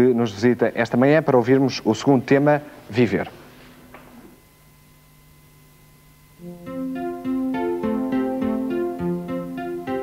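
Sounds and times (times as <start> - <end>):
faint hum: 0.0 - 10.0
electronic keyboard notes: 6.4 - 10.0.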